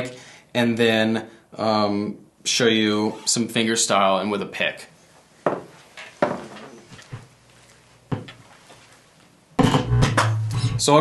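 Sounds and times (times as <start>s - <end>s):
bass guitar handling knocks: 9.6s - 10.8s.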